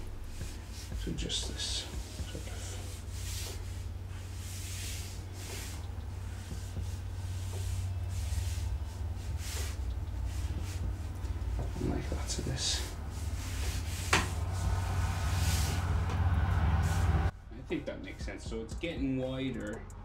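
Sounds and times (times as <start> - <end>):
low rumble: 0.0 - 17.6.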